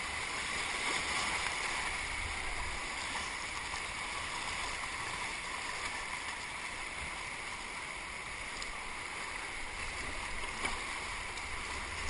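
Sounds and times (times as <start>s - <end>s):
river rapids rushing: 0.0s - 12.0s.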